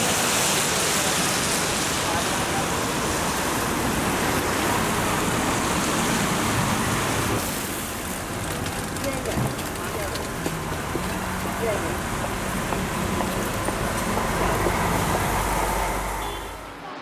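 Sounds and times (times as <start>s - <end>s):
rain: 0.0s - 17.0s
traffic on wet road: 0.0s - 17.0s.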